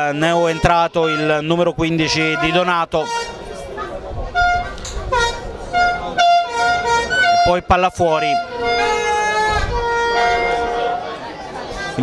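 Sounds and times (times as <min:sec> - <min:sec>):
horn tooting short blasts: 0:00.4 - 0:03.6, 0:04.4 - 0:11.2.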